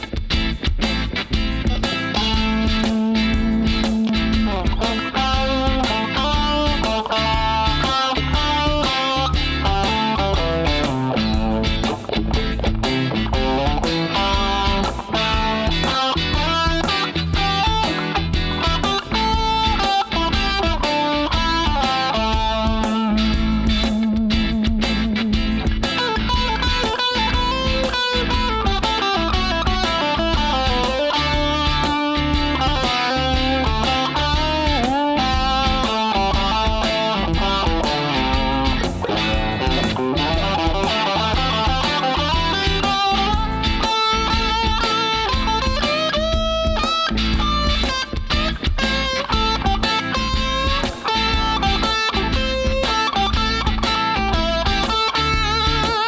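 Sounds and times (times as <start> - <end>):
backing track bass and chords: 0.0 - 56.0
electric guitar lead: 0.0 - 56.0.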